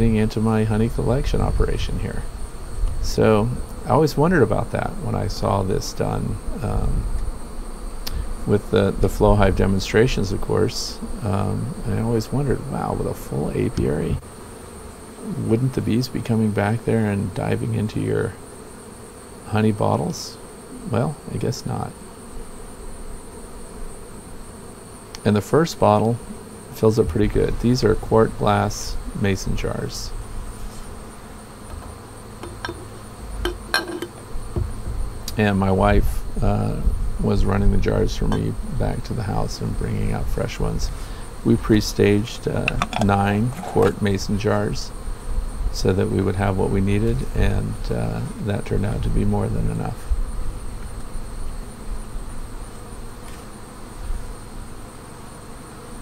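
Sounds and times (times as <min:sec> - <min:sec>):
bees buzzing: 0:00.0 - 0:56.0
glass jar clicks: 0:32.4 - 0:34.2, 0:42.7 - 0:44.1.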